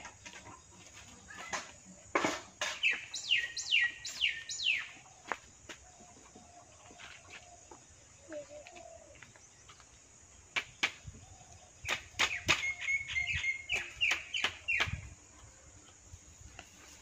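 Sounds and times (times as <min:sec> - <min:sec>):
machete chopping bamboo: 0:11.8 - 0:12.7, 0:13.7 - 0:15.1.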